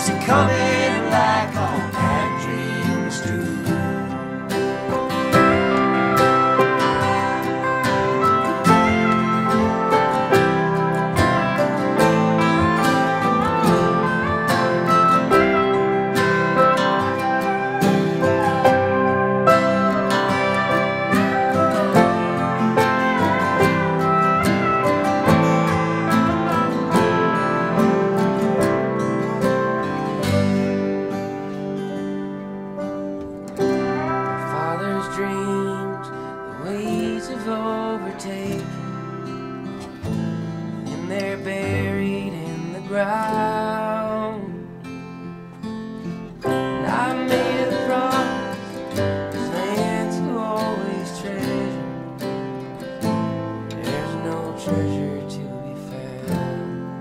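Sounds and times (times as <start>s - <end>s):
acoustic country band playing: 0.0s - 57.0s
sliding lead guitar line: 0.0s - 57.0s.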